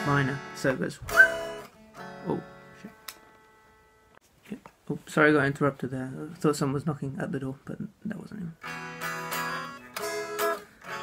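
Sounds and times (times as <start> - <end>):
electric guitar chord ringing: 0.0 - 4.2, 8.6 - 11.0.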